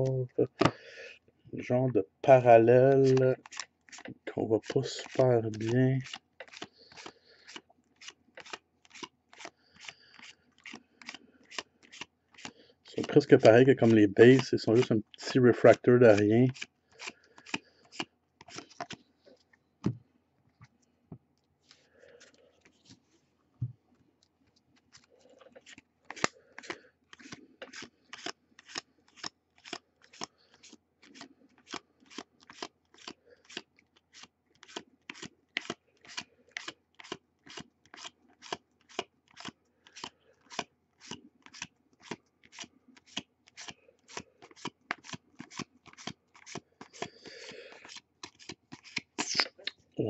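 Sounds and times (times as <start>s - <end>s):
cards rustling: 2.9s - 19.1s, 24.0s - 49.5s.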